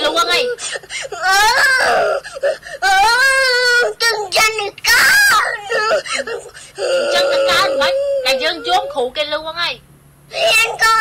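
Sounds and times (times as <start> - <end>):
person wailing: 0.0 - 3.9, 5.0 - 9.1, 10.3 - 11.0.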